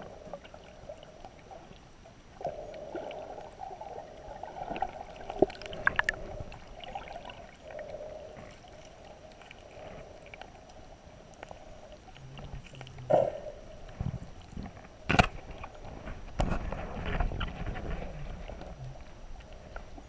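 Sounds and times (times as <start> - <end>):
muffled underwater water movement: 0.0 - 20.0.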